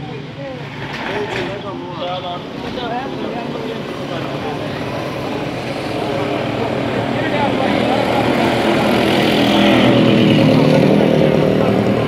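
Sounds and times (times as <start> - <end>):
faint voices: 0.0 - 12.0
street noise: 0.0 - 12.0
vehicle engine running: 2.6 - 12.0.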